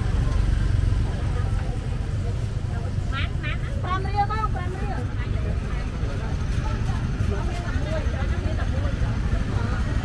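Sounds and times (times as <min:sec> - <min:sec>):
street noise rumble: 0:00.0 - 0:10.0.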